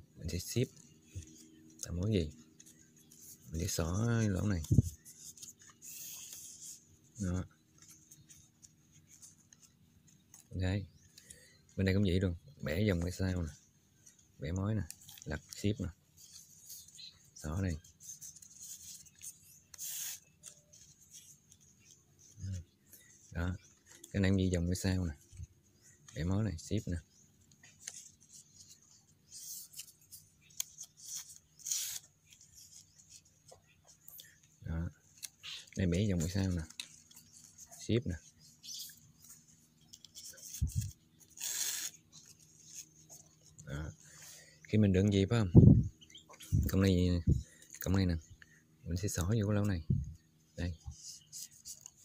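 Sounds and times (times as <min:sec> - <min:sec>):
leaf strips rustling: 0:00.3 - 0:52.0.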